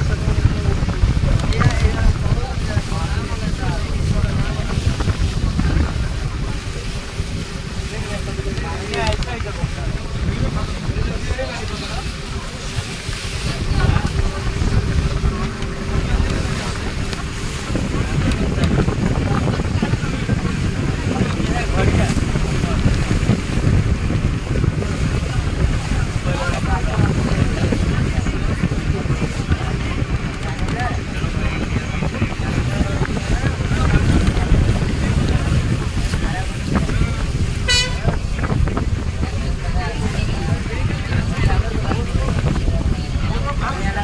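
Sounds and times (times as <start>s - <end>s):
boat engine rumble: 0.0s - 44.0s
passengers' voices: 0.0s - 44.0s
water washing along hull: 0.0s - 44.0s
wind buffeting microphone: 0.0s - 44.0s
boat horn toot: 37.4s - 38.6s.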